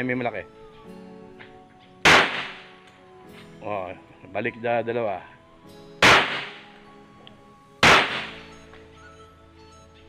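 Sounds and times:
handgun shot: 2.0 - 2.8, 6.0 - 6.7, 7.8 - 8.5.

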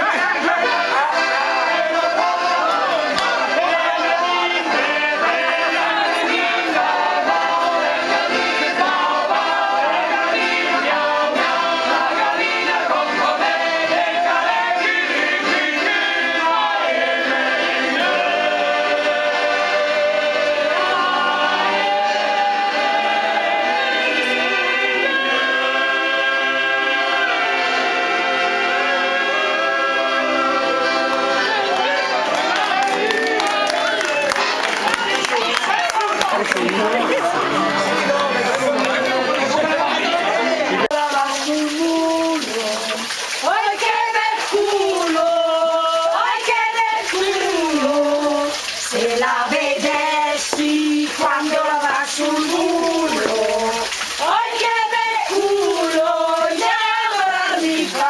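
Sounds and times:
men singing a folk song: 0.0 - 34.5, 36.7 - 58.0
accordions playing held chords: 0.0 - 40.9
crowd talking and calling: 0.0 - 42.7
water running into stone trough: 40.7 - 58.0.

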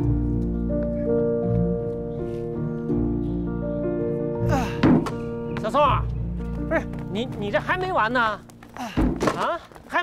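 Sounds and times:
music of sustained notes: 0.0 - 8.7.

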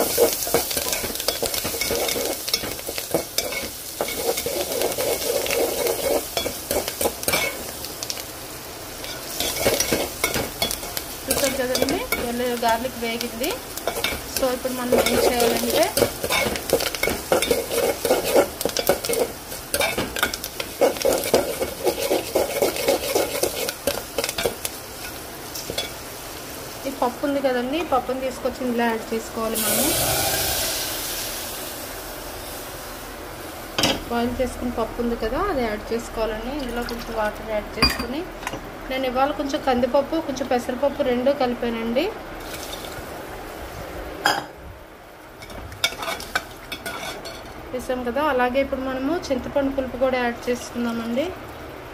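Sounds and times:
frying oil sizzling: 0.0 - 44.4, 45.2 - 51.7
spoon scraping metal pot: 14.9 - 24.5, 45.9 - 47.3.

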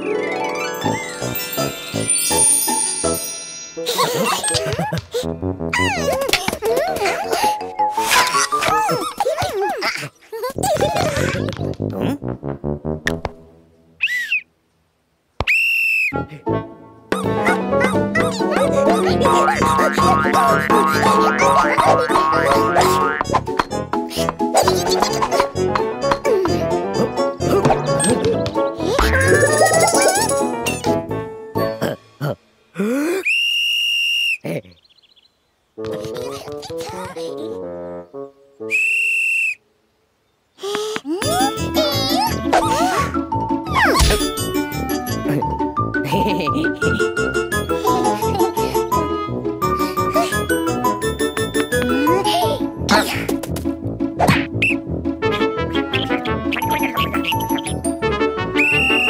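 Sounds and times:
cartoon music notes stepping downward: 0.0 - 3.6, 17.1 - 23.2, 28.9 - 30.9, 55.8 - 58.1
bouncy cartoon music: 0.0 - 9.7, 10.6 - 13.6, 16.2 - 32.2, 35.8 - 38.0, 41.1 - 59.0
whistle blast: 33.2 - 34.4, 38.7 - 39.6, 58.6 - 59.0.

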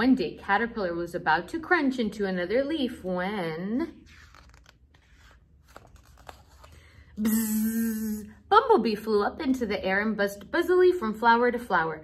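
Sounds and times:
page turning rustle and clicks: 4.1 - 6.8.

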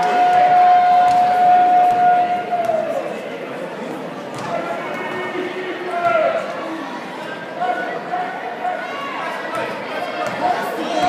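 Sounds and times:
gym crowd noise: 0.0 - 11.0.

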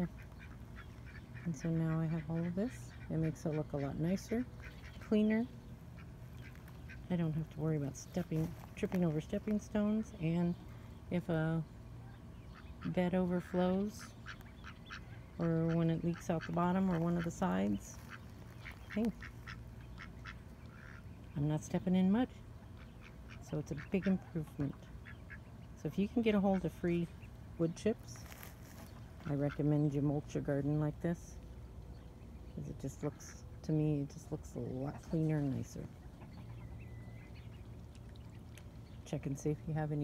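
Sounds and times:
poultry calling: 0.0 - 10.5, 12.0 - 21.2
ducks quacking: 0.0 - 10.6, 12.4 - 28.0
low steady hum: 0.0 - 40.0.

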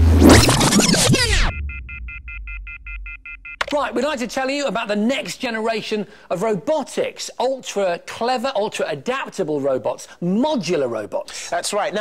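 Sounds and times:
descending rewind sweep: 0.0 - 3.2
short electronic beeps: 0.7 - 3.8.

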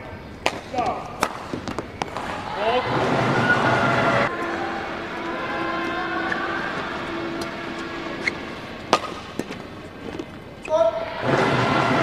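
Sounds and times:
crowd noise: 0.0 - 12.0
racket striking shuttlecock: 0.4 - 10.6
steady held tone: 1.3 - 10.8.

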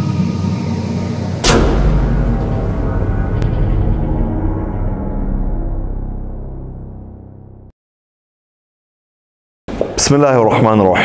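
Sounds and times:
deep low rumble: 0.0 - 7.7
cinematic impact hit: 1.2 - 7.7.

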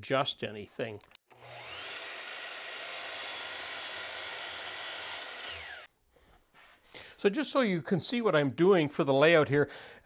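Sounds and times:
miter saw cutting wood: 1.3 - 5.9.

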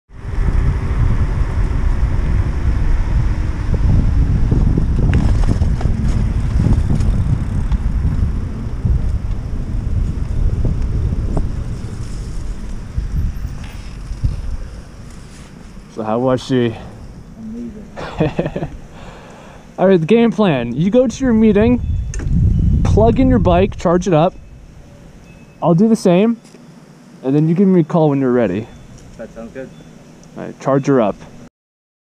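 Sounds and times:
wind buffeting microphone: 0.1 - 25.4
tyre and road noise: 0.1 - 30.4.

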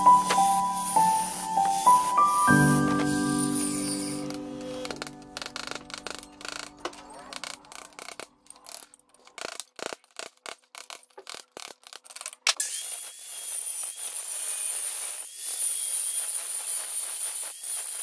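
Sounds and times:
angle grinder grinding stone: 0.0 - 18.0
chisel chipping stone: 6.7 - 18.0.

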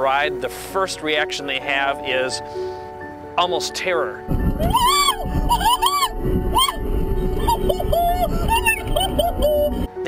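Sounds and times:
road and wind noise: 4.2 - 10.0
woman shrieking and laughing: 4.6 - 9.9.

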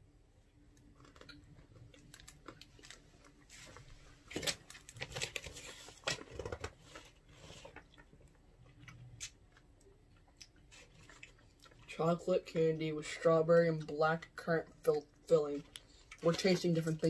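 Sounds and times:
paper and packaging crinkling: 0.9 - 8.3, 15.5 - 17.0.

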